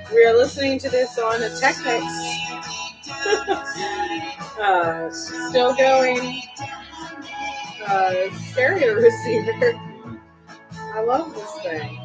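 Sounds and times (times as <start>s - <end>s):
song with guitar and vocals: 0.0s - 12.0s.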